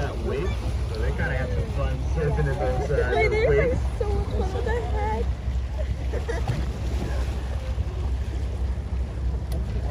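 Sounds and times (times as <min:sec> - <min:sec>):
boat engine rumble: 0:00.0 - 0:09.9
faint voices: 0:00.0 - 0:09.9
water washing alongside: 0:00.0 - 0:09.9.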